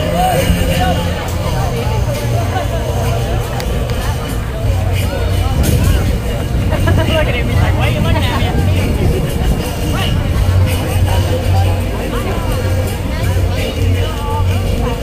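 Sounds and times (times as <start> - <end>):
crowd chatter: 0.0 - 15.0
low rumble: 0.0 - 15.0
music: 0.0 - 15.0.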